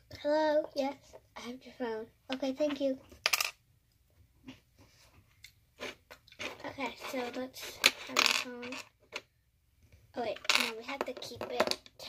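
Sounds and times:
plastic toy bricks clattering: 6.4s - 9.2s.

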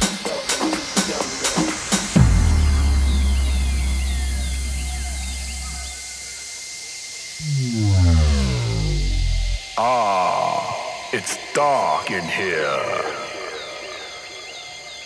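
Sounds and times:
deep bass note: 2.2s - 6.1s, 7.4s - 9.7s
falling synth sweep: 7.4s - 9.6s
stepping synth bass line: 7.4s - 9.6s.

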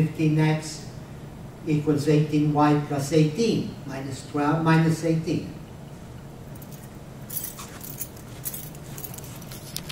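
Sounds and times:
steady low hum: 0.0s - 9.9s
rustling and clicking: 6.6s - 9.9s.

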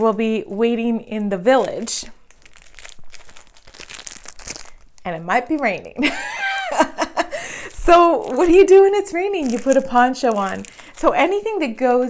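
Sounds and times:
plastic packaging crinkling: 0.0s - 6.1s, 7.2s - 12.0s.

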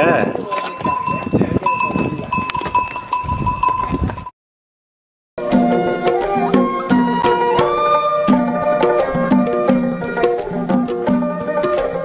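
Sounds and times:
pack animal bells ringing: 0.0s - 4.3s
hooves clopping on stone: 0.3s - 4.3s.

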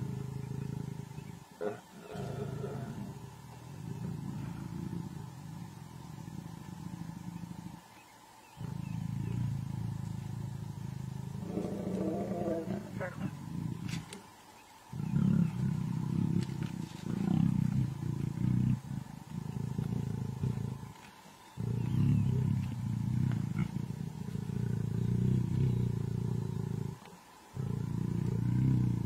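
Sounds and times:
lions growling low: 0.0s - 14.2s, 14.9s - 29.0s.

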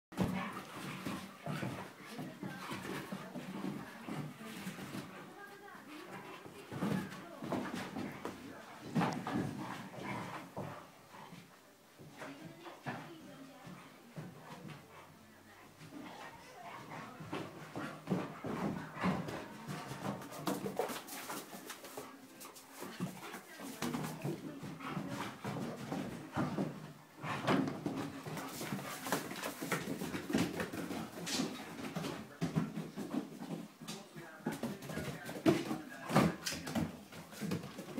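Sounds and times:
puppies scuffling: 0.2s - 37.9s.

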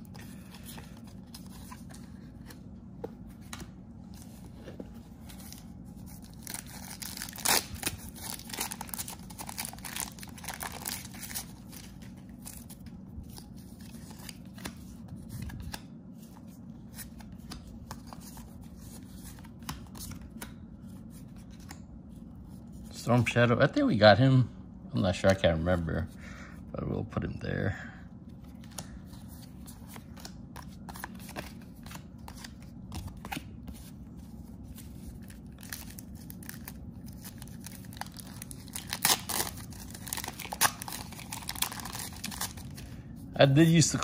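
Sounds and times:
low room hum: 0.0s - 44.0s.

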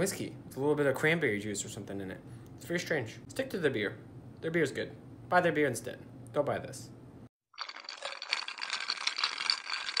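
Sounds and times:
dense rapid rattling: 7.6s - 10.0s.

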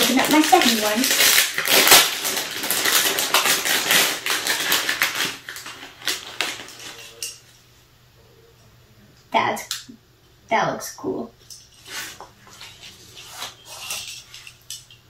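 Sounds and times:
plastic wrapper crinkling: 0.0s - 7.6s, 11.5s - 15.0s.

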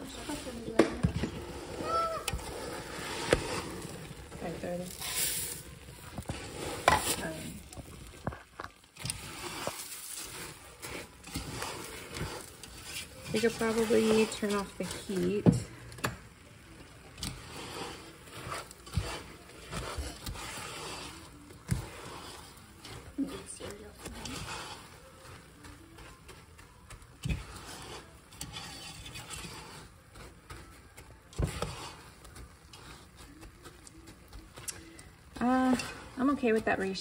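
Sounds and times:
spatula scraping sticky cereal: 0.0s - 37.0s.

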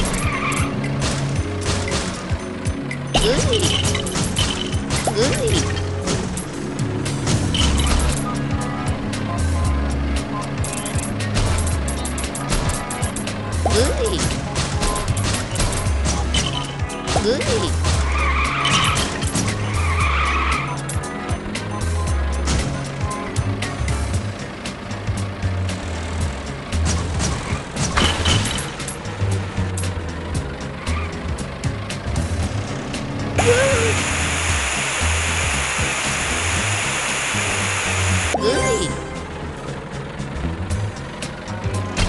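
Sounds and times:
game music with low beat: 0.0s - 42.0s
game vehicle effects: 0.0s - 42.0s
hissing water spray effect: 33.4s - 38.4s.

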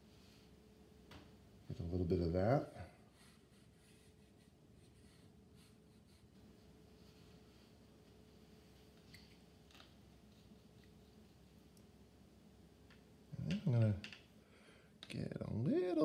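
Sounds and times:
thin steady hum: 0.0s - 16.0s
brush strokes on paper: 3.1s - 8.9s, 10.2s - 11.8s.

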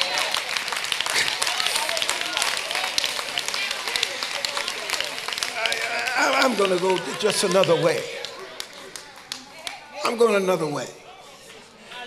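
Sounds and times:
congregation clapping: 0.0s - 10.5s.

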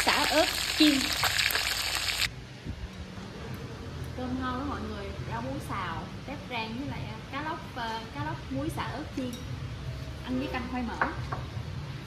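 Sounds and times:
fish frying in hot oil: 0.0s - 2.3s.

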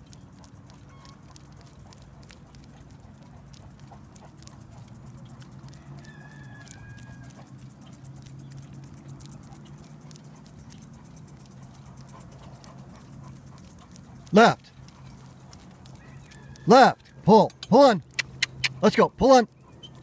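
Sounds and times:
sulky wheels rolling on asphalt: 0.0s - 18.7s, 19.3s - 20.0s
dog's feet ticking on pavement: 0.0s - 20.0s
person shouting a command: 14.3s - 14.6s, 16.6s - 18.0s, 18.8s - 19.5s.

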